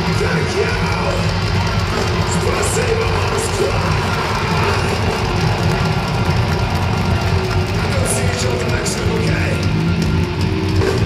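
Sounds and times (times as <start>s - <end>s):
live metal band playing: 0.0s - 11.0s.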